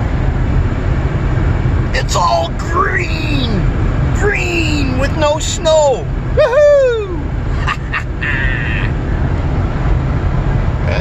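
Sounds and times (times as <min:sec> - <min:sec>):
van driving on highway: 0:00.0 - 0:11.0.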